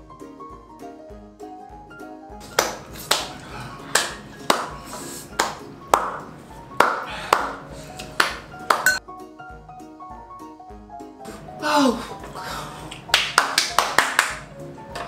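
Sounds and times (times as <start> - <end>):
piano music: 0.0 - 15.0
sharp hand claps: 2.4 - 9.0, 12.8 - 15.0.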